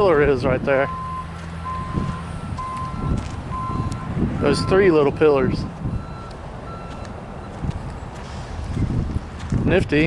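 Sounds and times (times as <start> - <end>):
wind rumble on microphone: 0.0 - 10.0
vehicle reversing alarm beeping: 0.8 - 8.8.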